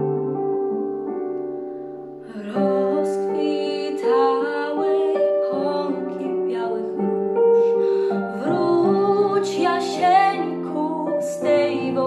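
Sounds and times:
piano accompaniment: 0.0s - 12.0s
girl singing slow song: 2.2s - 12.0s.

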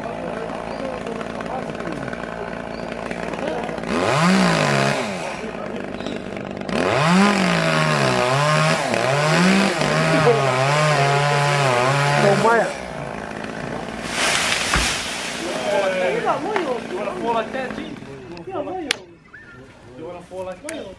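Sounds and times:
chainsaw idling and revving: 0.0s - 18.8s.

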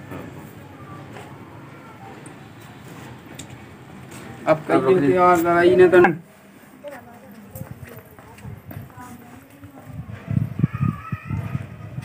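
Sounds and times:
faint voices: 0.0s - 12.0s
footsteps on concrete: 5.2s - 10.3s.

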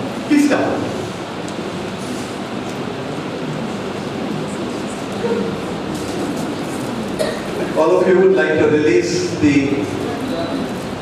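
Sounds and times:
rushing hall noise: 0.0s - 11.0s.

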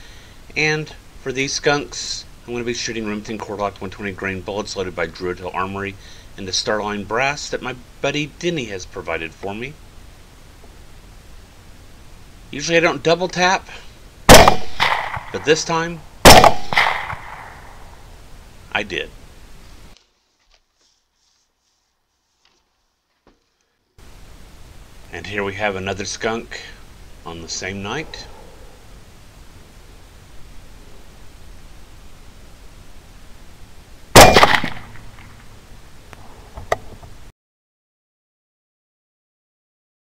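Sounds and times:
suppressed rifle shot: 14.3s - 15.4s, 16.2s - 17.8s, 34.2s - 35.3s.

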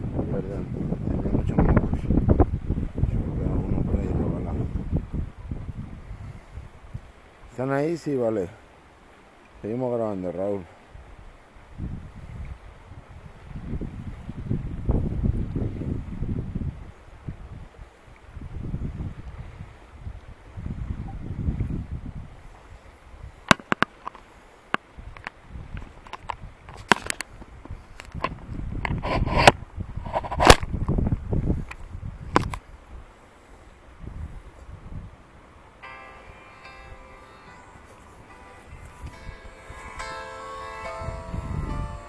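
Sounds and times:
wind buffeting microphone: 0.0s - 7.6s, 10.8s - 23.5s, 24.8s - 35.4s, 38.2s - 42.0s.

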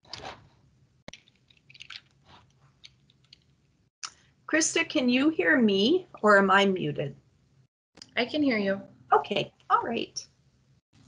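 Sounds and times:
faint clicks and crackling: 1.1s - 4.2s.

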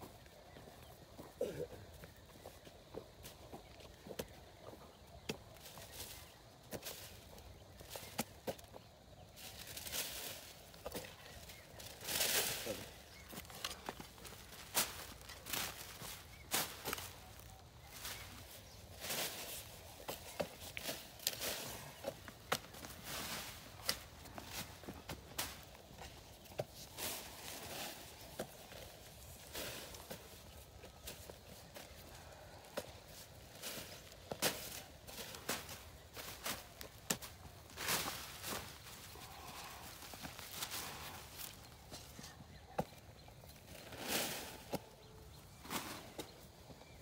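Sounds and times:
footsteps on dirt: 0.0s - 43.7s.

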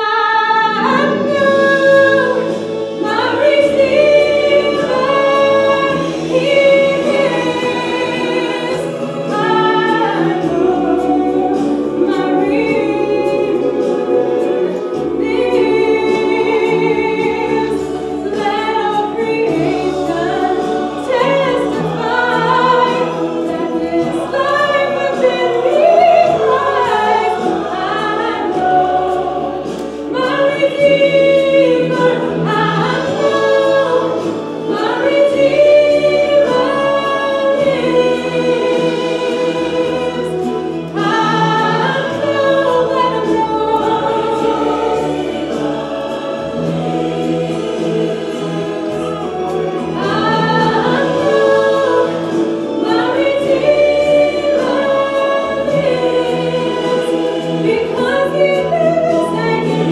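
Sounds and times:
woman singing into a microphone: 0.0s - 46.0s, 48.4s - 59.9s
instrumental accompaniment with bass: 0.6s - 59.9s.

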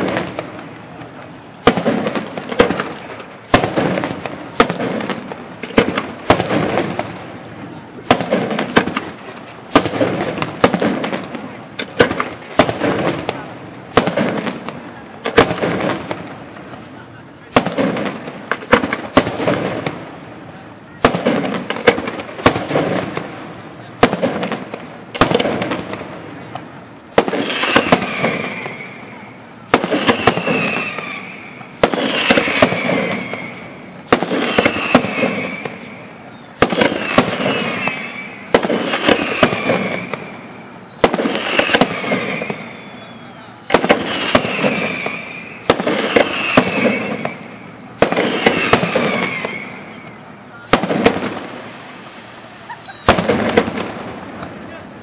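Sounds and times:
firework shells bursting: 0.0s - 20.1s, 21.0s - 54.6s
firework crackling: 0.0s - 55.0s
thin whistle: 30.0s - 31.7s, 32.6s - 33.7s, 34.5s - 38.5s, 39.1s - 41.2s, 42.3s - 43.7s, 44.4s - 45.7s, 51.4s - 53.2s.

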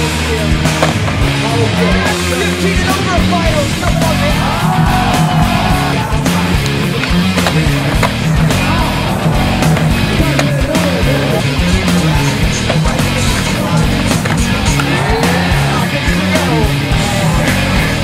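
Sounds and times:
rock music with guitar: 0.0s - 18.0s
skateboard wheels rolling on concrete: 0.0s - 18.0s
skateboard knocking and clacking: 6.6s - 8.3s, 9.6s - 10.9s.

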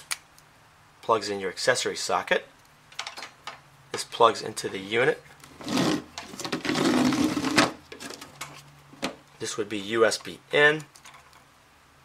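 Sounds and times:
rubbing and rustling: 5.5s - 9.1s.

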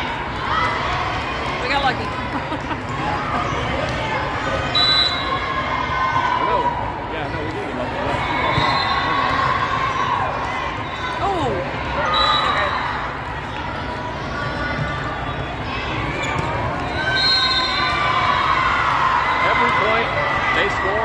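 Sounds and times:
crowd chatter: 0.0s - 21.0s
shoes squeaking on court: 16.0s - 17.2s.

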